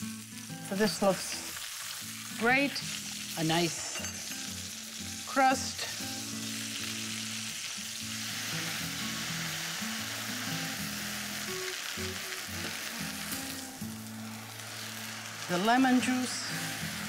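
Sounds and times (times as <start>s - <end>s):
meat sizzling in oil: 0.0s - 17.0s.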